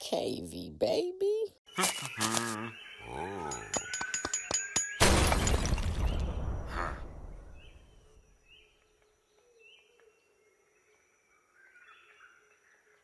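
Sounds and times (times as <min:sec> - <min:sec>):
bird chirps: 0:01.7 - 0:05.0.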